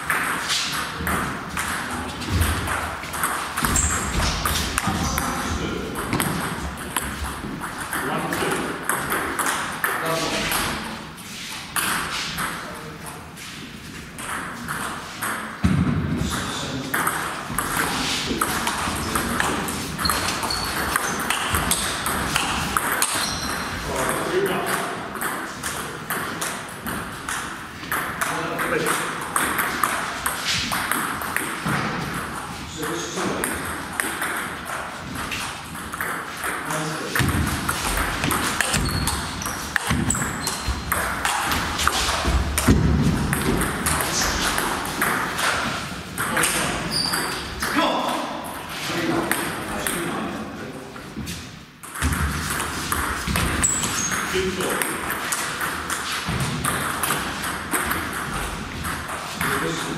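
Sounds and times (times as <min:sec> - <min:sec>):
voices in hall: 0:01.6 - 0:30.6, 0:36.6 - 0:42.7, 0:43.8 - 0:51.4.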